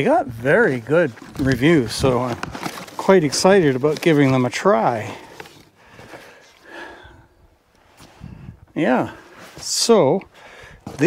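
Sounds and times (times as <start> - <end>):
cardboard box handling: 0.8 - 6.3.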